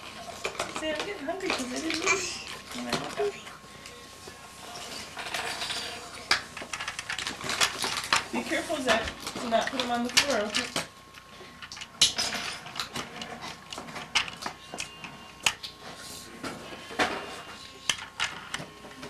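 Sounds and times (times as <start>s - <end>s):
plastic toys clattering: 0.2s - 3.4s, 4.8s - 10.9s, 11.6s - 15.7s, 17.9s - 18.7s.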